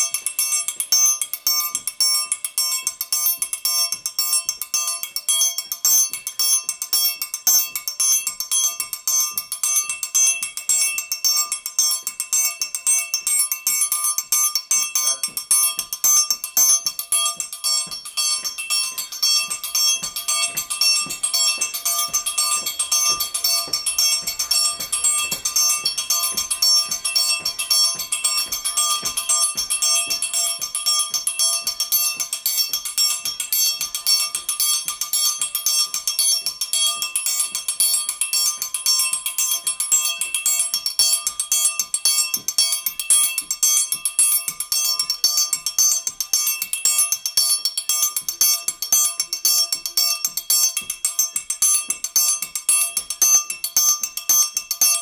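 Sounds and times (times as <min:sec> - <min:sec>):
metal percussion rapid strikes: 0:00.0 - 0:55.0.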